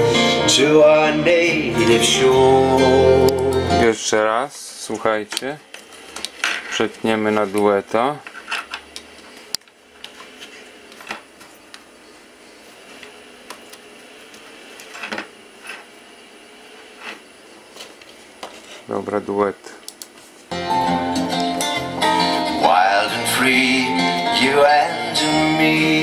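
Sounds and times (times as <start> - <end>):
sung music through speakers: 0.0 - 3.8, 20.5 - 26.0.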